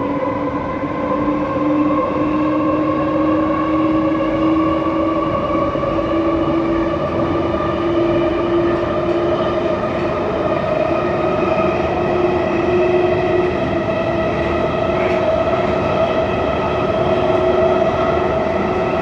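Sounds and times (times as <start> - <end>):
train rumble in tunnel: 0.0 - 19.0
train whine: 0.0 - 19.0.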